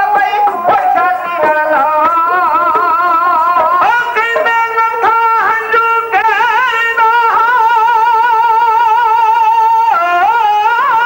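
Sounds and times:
bowed string wavering melody: 0.6 - 6.7.

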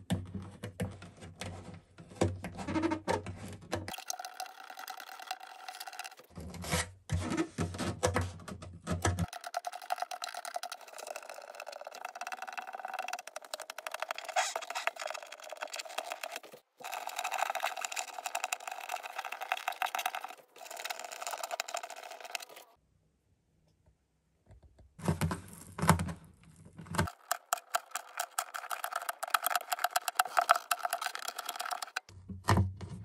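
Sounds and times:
fingertips rubbing adhesive off wood: 13.6 - 22.6, 27.0 - 32.0.

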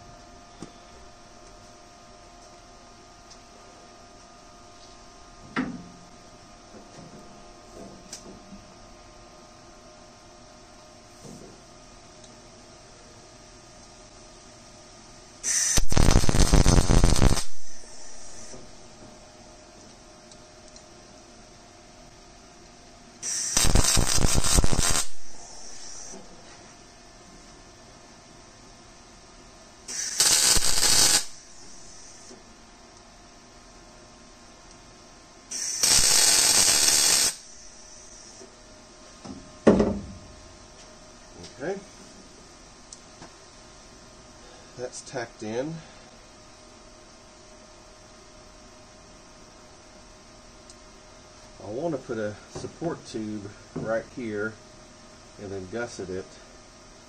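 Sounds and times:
welding arc crackling: 15.4 - 18.9, 23.2 - 26.2, 29.9 - 32.4, 35.5 - 38.4.

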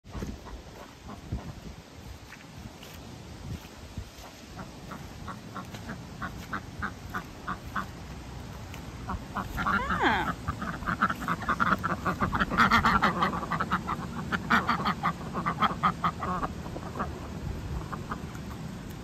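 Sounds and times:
ducks quacking: 0.1 - 2.3, 4.1 - 18.6.

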